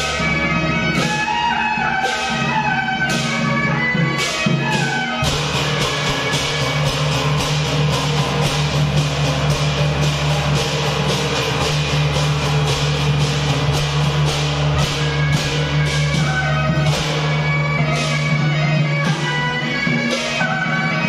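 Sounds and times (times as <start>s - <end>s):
bright percussion strikes: 0.0s - 21.0s.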